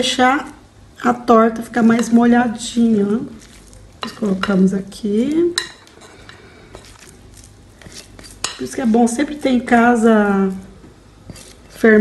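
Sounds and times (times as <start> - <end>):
spatula scraping bowl: 1.9 - 12.0.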